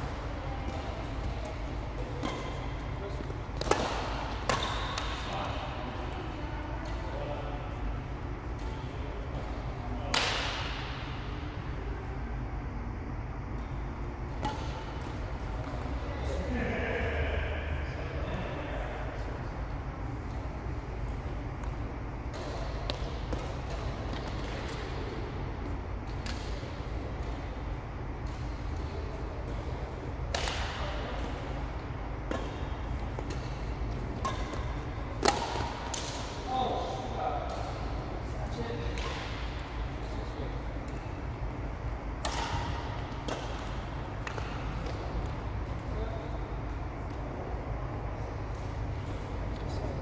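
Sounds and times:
racket hitting shuttlecock: 0.1 - 5.6, 10.1 - 11.4, 14.3 - 15.9, 22.3 - 36.5, 38.8 - 40.2, 42.2 - 45.4
badminton racket hitting shuttlecock: 30.3 - 31.0, 32.3 - 36.4, 42.2 - 45.0.

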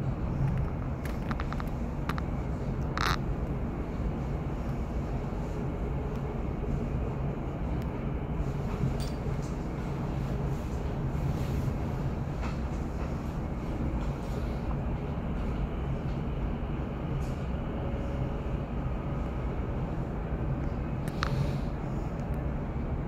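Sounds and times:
train wheels rumbling on rails: 0.0 - 23.0.

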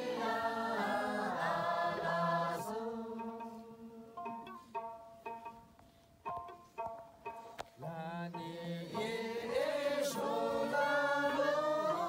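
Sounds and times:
group of voices singing: 0.0 - 4.2, 7.8 - 12.0
plucked lute notes: 2.5 - 10.8.

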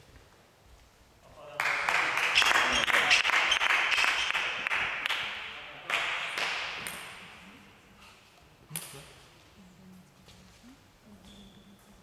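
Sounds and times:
people clapping: 1.5 - 7.3.

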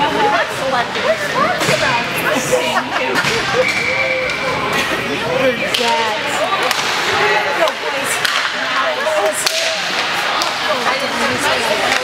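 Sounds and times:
spectators chattering: 0.0 - 12.0
hockey sticks cracking on puck: 5.7 - 12.0.

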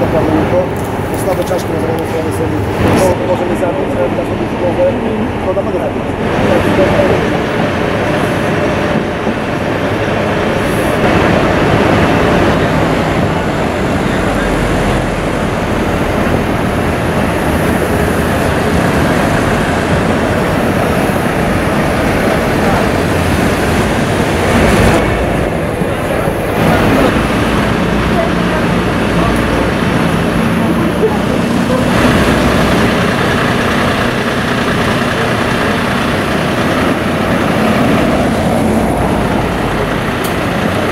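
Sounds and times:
diesel engine idling: 0.0 - 40.9
street noise: 0.0 - 40.9.

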